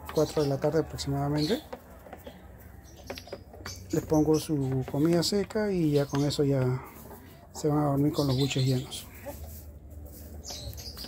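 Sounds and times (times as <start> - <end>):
hens clucking: 0.0 - 11.0.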